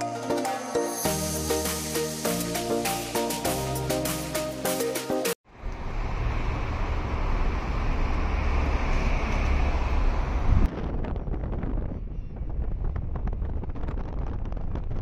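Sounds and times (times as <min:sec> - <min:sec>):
car road noise: 0:05.5 - 0:10.7
wind rumbling on microphone: 0:05.6 - 0:15.0.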